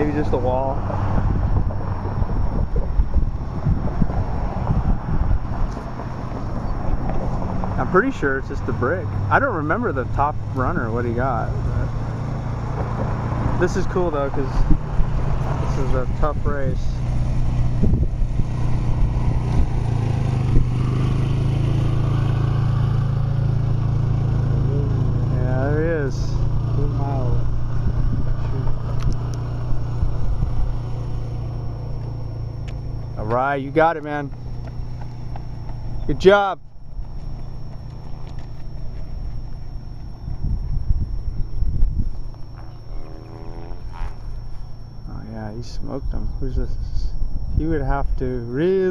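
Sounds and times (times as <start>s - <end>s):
wind buffeting microphone: 0.0s - 43.0s
steady low hum: 0.0s - 48.9s
vehicle engine running: 0.0s - 48.9s.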